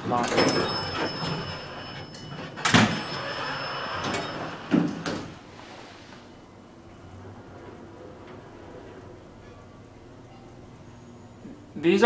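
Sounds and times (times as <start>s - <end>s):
elevator doors sliding: 0.0s - 11.4s
thin high whine: 0.0s - 11.8s
loud door clunk: 0.2s - 5.4s.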